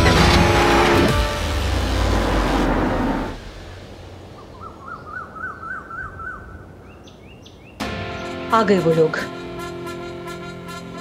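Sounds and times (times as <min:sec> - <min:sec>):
loud rushing noise: 0:00.0 - 0:04.6
birds singing: 0:04.3 - 0:08.4.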